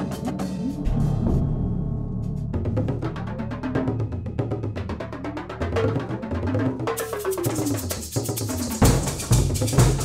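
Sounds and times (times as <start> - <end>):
percussion music: 0.0 - 10.0.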